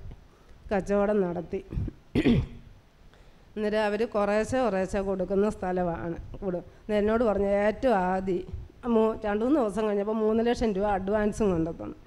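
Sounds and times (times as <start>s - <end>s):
woman speaking into a microphone: 0.7s - 2.5s, 3.6s - 12.0s
woman clearing her throat: 1.7s - 2.7s.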